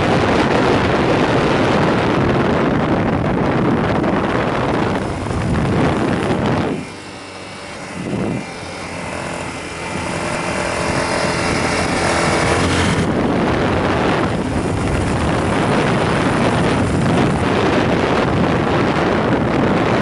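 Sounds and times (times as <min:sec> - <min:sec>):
motorcycle engine running: 0:00.0 - 0:20.0
wind buffeting microphone: 0:00.0 - 0:20.0.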